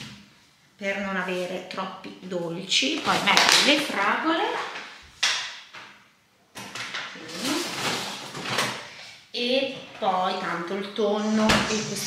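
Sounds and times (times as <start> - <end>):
plastic packaging rustling: 2.7 - 5.1, 6.7 - 9.1.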